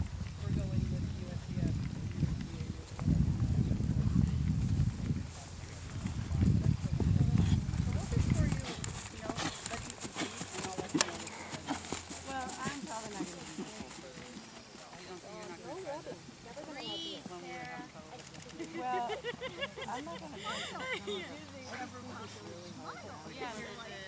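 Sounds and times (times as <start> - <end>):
horse hooves on hard ground: 0.0 - 16.0.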